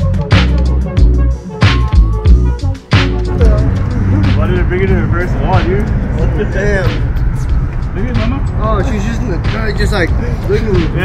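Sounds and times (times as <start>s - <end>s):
street traffic drone: 2.3s - 11.0s
man talking: 3.4s - 11.0s.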